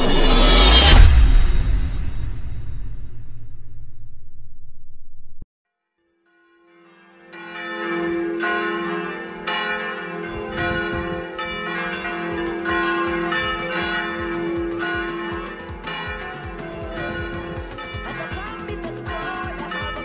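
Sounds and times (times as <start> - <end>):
church bells striking: 6.7 - 20.0
held low tone: 10.2 - 11.5
beat with high percussion: 12.1 - 20.0.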